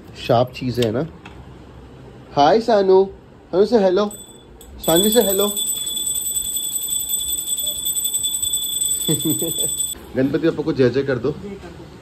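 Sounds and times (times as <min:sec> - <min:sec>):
electronic toy ringing tone: 0:04.1 - 0:10.0.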